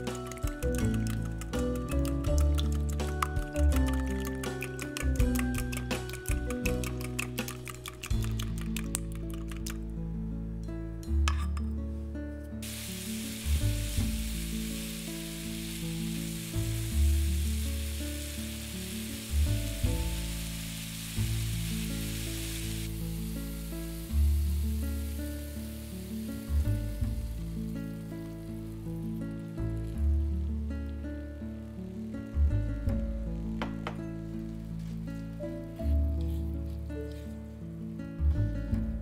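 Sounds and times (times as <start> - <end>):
vegetables sizzling in a frying pan: 12.6 - 30.7.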